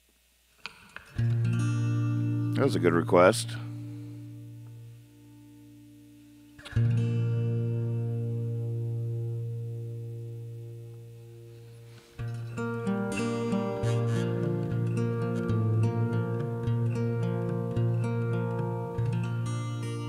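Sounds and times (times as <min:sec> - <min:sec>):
acoustic guitar playing: 0:00.7 - 0:20.0.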